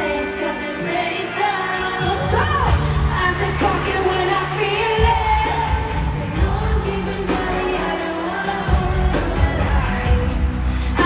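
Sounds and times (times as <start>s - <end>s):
live pop singing: 0.0s - 11.0s
backing track with heavy bass: 1.4s - 11.0s.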